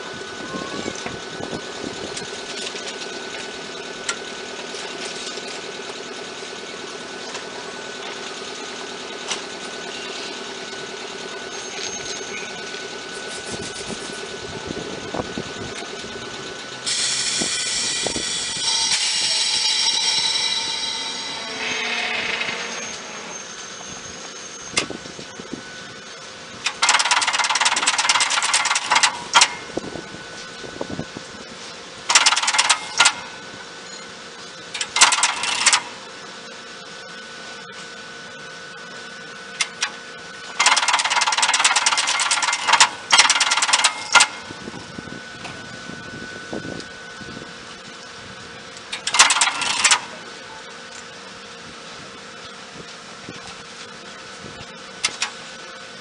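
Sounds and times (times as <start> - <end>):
steady hum: 0.0 - 56.0
train contactors clicking: 16.8 - 23.1, 26.6 - 29.6, 32.1 - 33.3, 34.7 - 36.0, 40.6 - 44.4, 48.8 - 50.2, 55.0 - 55.4.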